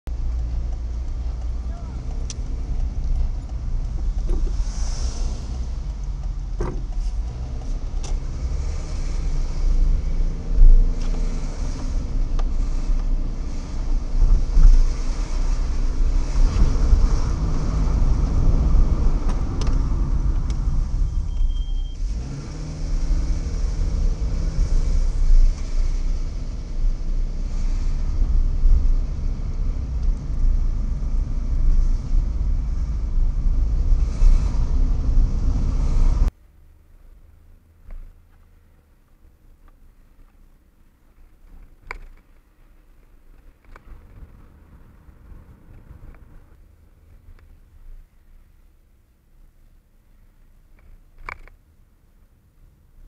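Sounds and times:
low road rumble: 0.0s - 53.0s
short high beep: 21.1s - 22.0s.

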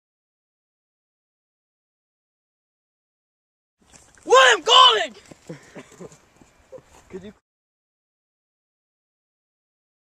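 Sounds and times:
young person giggling: 5.4s - 7.0s.

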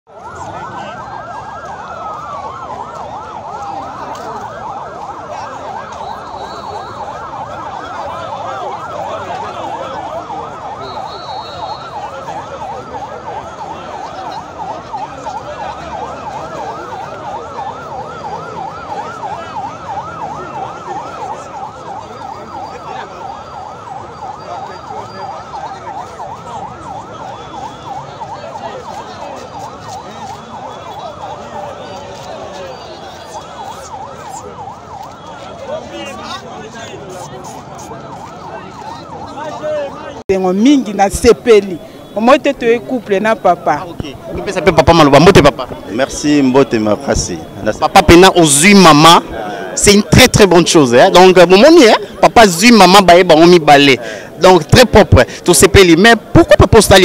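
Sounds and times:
large crowd noise: 0.1s - 57.0s
sirens yelping and wailing: 0.1s - 57.0s.

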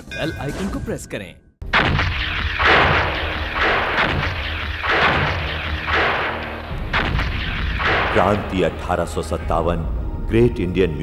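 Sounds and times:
cannon fire blasts: 1.7s - 8.8s.

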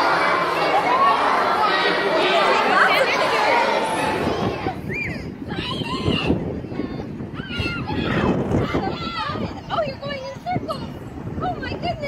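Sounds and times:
children chattering and calling: 0.0s - 12.0s.

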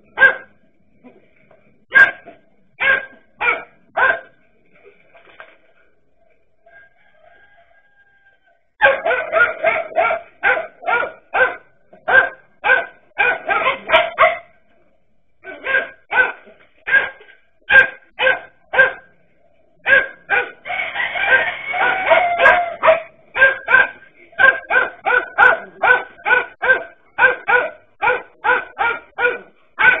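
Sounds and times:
dogs barking: 0.1s - 0.6s, 1.9s - 4.4s, 8.8s - 14.6s, 15.4s - 19.2s, 19.8s - 30.0s.

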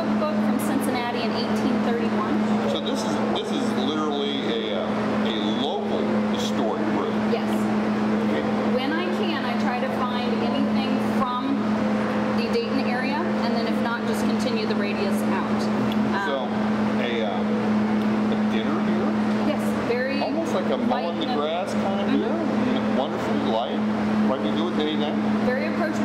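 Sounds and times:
people talking: 0.0s - 11.7s, 12.4s - 17.5s, 18.2s - 26.0s
low hum: 0.0s - 26.0s.

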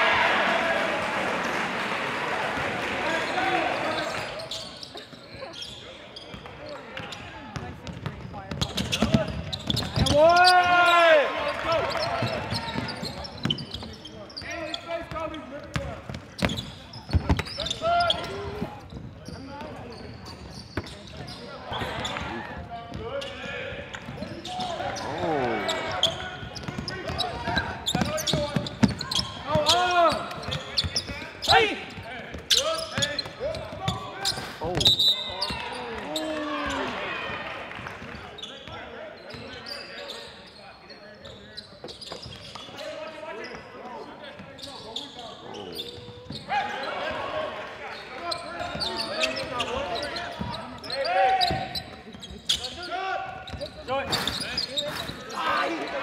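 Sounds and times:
shoe squeals: 3.1s - 7.5s, 8.2s - 37.0s, 38.0s - 47.3s, 47.9s - 56.0s.

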